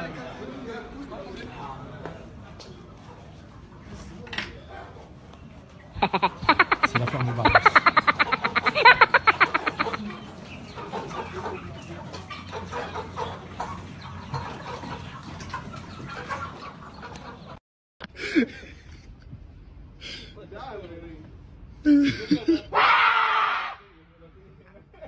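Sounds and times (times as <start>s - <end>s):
hens clucking: 0.0s - 17.6s
loud rapid pulsing hen call: 6.0s - 11.8s, 22.7s - 23.9s.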